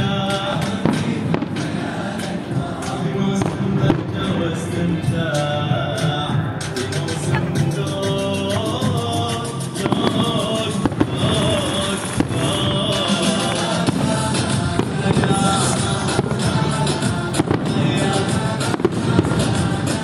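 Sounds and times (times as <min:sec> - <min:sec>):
fireworks bangs: 0:00.0 - 0:07.1, 0:07.7 - 0:20.0
loud music: 0:00.0 - 0:20.0.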